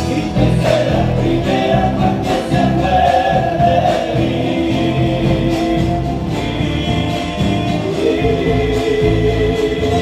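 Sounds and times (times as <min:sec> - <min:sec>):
live band playing: 0:00.0 - 0:10.0
voices singing together: 0:00.0 - 0:10.0.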